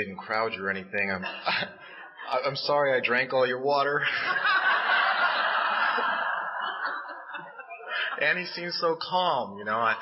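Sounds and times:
audience laughing: 4.0 - 8.7.

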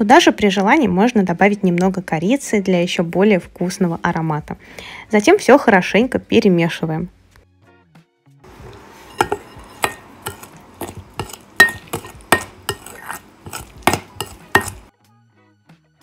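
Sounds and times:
wet mixing: 8.5 - 14.9
spoon clinking against glass: 9.1 - 14.8.

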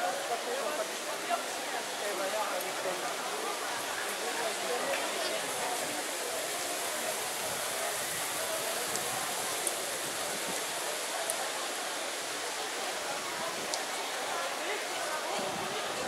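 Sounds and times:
crowd chatter: 0.0 - 16.0
fountain water splashing: 0.0 - 16.0.

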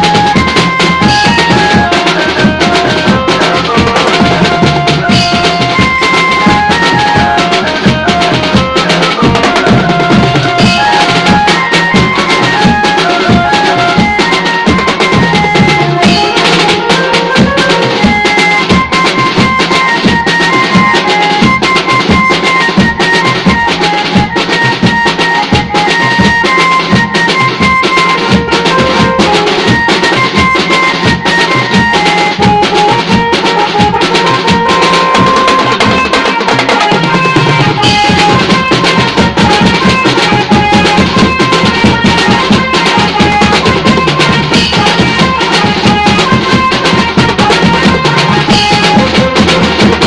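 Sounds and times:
percussion beat: 0.0 - 50.0
steel pan melody: 0.0 - 50.0.

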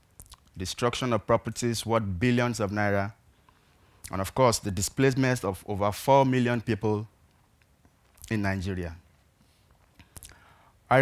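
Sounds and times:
mouth click: 0.2 - 0.6, 10.0 - 10.4
man talking: 0.6 - 3.2, 4.0 - 7.1, 8.2 - 9.0
short in-breath: 9.5 - 10.8.

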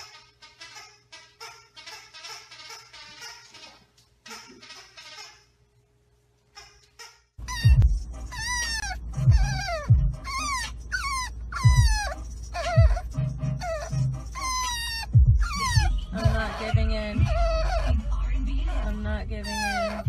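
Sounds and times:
puppy whining: 6.6 - 20.0.

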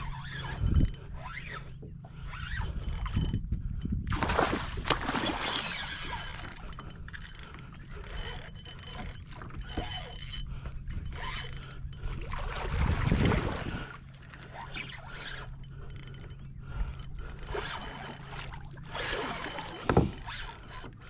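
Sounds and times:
fishing reel clicking: 0.0 - 4.0, 5.2 - 12.2, 14.4 - 21.0
water splashing: 4.1 - 6.7, 12.1 - 14.5.

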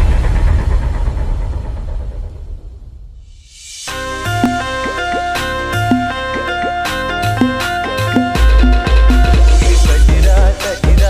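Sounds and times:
deep bass boom rumble: 0.0 - 3.5, 8.4 - 11.0.

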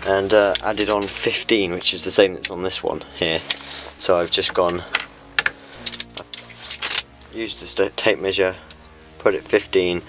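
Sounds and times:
tools clicking and knocking on workbench: 4.5 - 7.0.

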